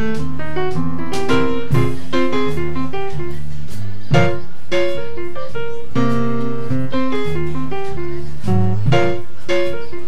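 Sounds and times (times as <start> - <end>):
jazz piano trio playing: 0.0 - 10.0.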